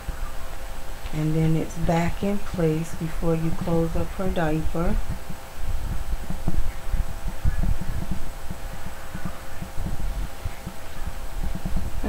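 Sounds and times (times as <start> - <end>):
faint steady hum: 0.0 - 12.0.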